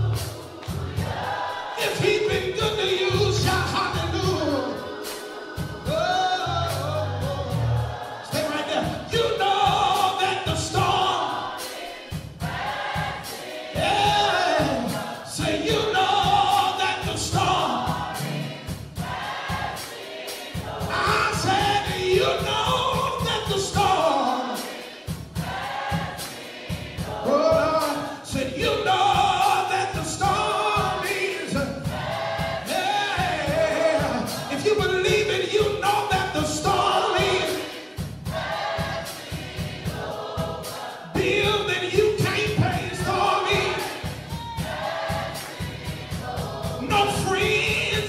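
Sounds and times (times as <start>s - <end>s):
gospel choir singing over beat: 0.0s - 48.0s.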